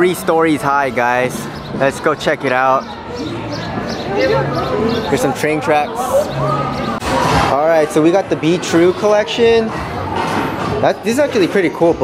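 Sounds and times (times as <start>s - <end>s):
overlapping chatter: 0.0s - 12.0s.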